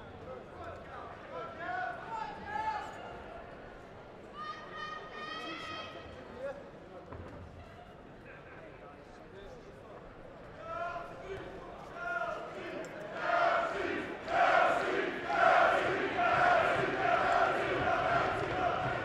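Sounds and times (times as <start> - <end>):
crowd chanting and shouting: 12.4 - 19.0.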